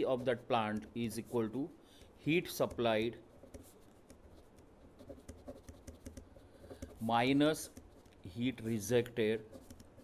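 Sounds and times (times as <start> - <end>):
pen scratching on paper: 2.6 - 10.0.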